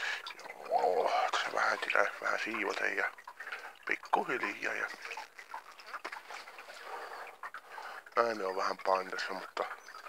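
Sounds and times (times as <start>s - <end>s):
man breathing while smoking: 6.7s - 8.1s.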